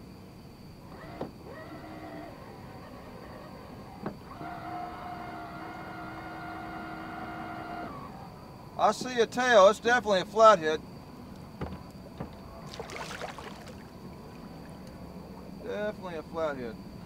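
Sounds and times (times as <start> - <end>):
electric motor whine: 0.8 - 8.8.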